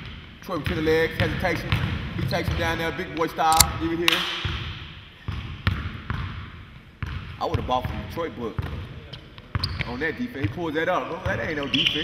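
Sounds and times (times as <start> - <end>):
basketball bouncing on hardwood floor: 5.3 - 8.0.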